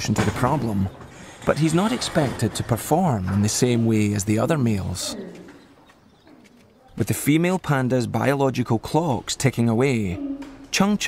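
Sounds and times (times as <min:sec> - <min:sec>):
bird cooing faintly: 0:05.1 - 0:07.0, 0:10.0 - 0:10.7.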